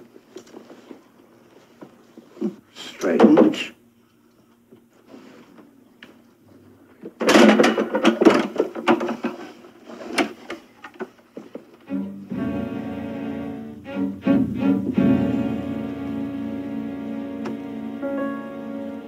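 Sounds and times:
wooden chair clattering on floor: 7.1 - 11.8
low bowed-string music: 11.8 - 19.0.

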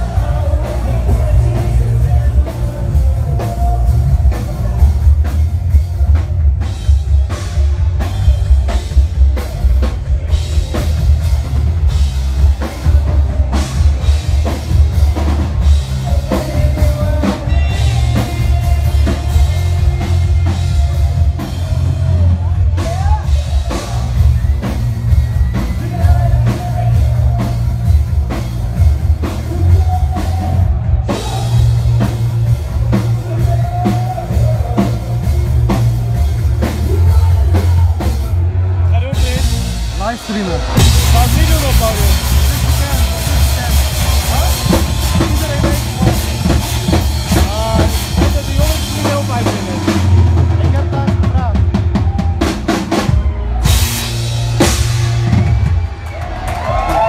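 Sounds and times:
bass guitar: 0.0 - 57.0
crowd voices: 0.0 - 57.0
drum kit: 0.0 - 57.0
live band playing loud music: 0.0 - 57.0.

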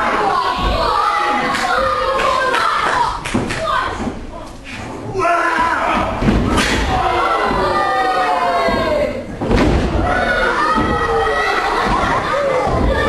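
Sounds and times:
crowd shouting: 0.0 - 3.9, 5.2 - 13.0.

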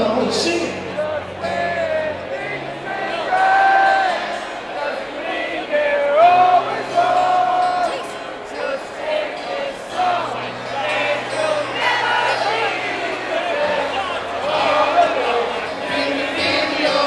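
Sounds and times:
acoustic guitar: 0.0 - 17.0
crowd noise: 0.0 - 17.0.

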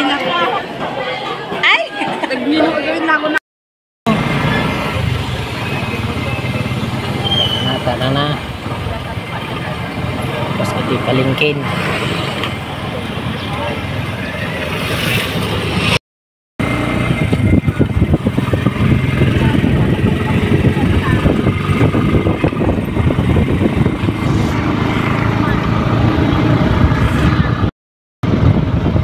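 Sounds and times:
motorcycle running: 4.1 - 16.0, 16.6 - 29.0
wind buffeting microphone: 16.7 - 29.0.

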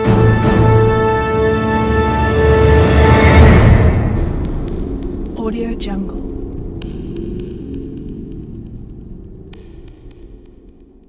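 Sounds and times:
low humming drone: 2.8 - 11.0.

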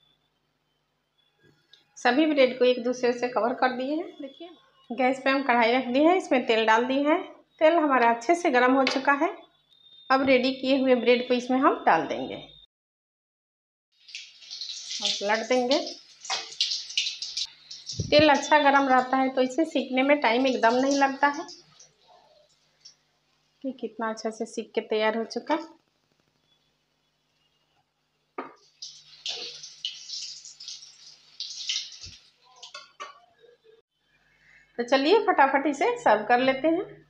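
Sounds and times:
hot oil sizzling: 13.9 - 24.4, 25.1 - 33.1.

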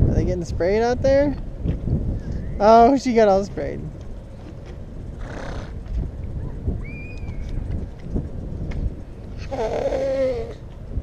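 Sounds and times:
dull low thuds: 1.3 - 2.6
horse snorting: 5.2 - 5.8.

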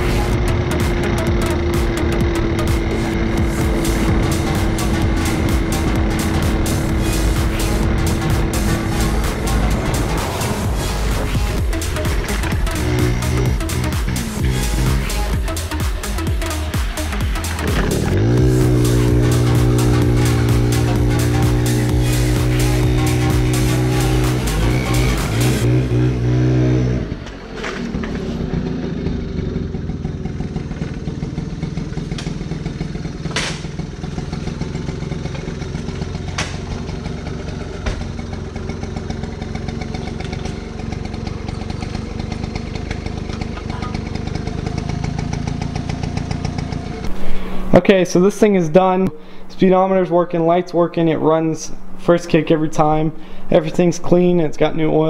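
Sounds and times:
electronic background music: 0.0 - 26.9
moped engine running: 0.0 - 49.3.

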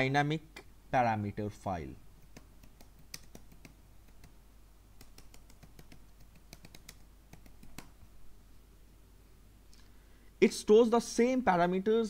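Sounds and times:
faint keyboard typing: 2.2 - 8.2.

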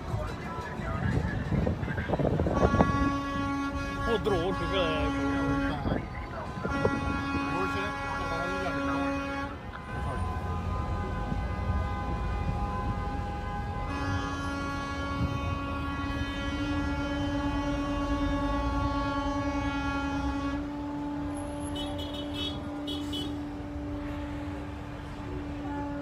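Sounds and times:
low rumble of traffic: 0.0 - 26.0
vehicle horns blasting: 0.9 - 26.0
loud low horn: 1.2 - 26.0.

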